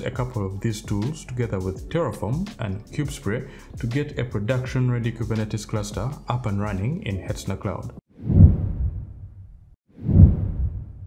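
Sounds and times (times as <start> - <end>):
deep whoosh sound effect: 8.2 - 11.0.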